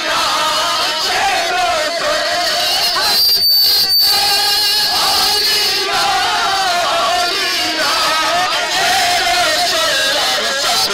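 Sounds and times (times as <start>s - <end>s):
crowd of men chanting: 0.0s - 3.3s, 4.0s - 10.9s
high steady whistling tone: 2.3s - 6.1s.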